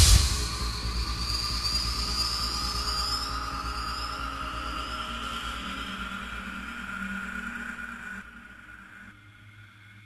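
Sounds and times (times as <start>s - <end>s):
low rumble: 0.0s - 1.6s.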